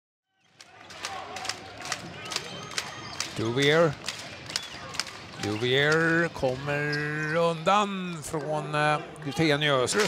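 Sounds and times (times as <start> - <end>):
murmur of crowd: 0.4 - 10.0.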